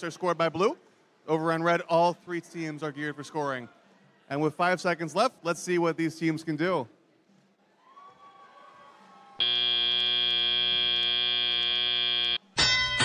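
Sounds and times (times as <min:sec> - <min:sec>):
loud steady buzzer: 0:09.4 - 0:12.4
bright electronic tone: 0:09.4 - 0:13.0.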